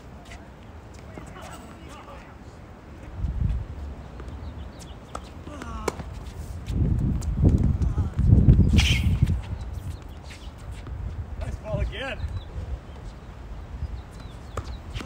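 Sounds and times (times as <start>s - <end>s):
tennis ball bouncing: 4.2s - 6.4s, 14.2s - 15.0s
racket hitting tennis ball: 5.1s - 6.4s.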